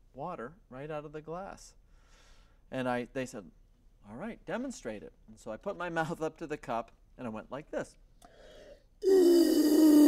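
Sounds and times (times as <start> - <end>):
man blowing into a cup: 8.5 - 10.0.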